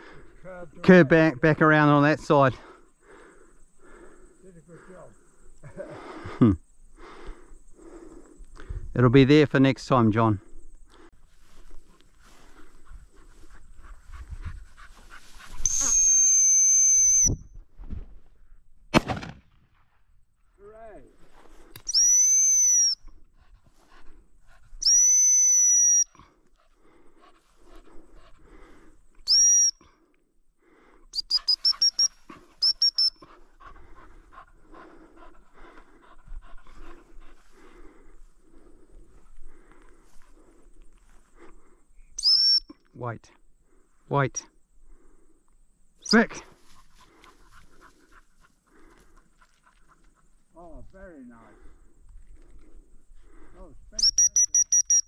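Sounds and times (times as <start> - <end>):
shrill dog whistle: 15.6 - 17.5, 21.9 - 23.1, 24.8 - 26.2, 29.2 - 29.8, 31.2 - 33.2, 42.2 - 42.8, 54.0 - 55.0.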